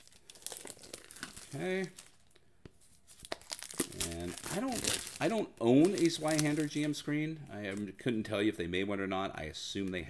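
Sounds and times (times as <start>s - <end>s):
plastic packaging crinkling: 0.0s - 7.9s.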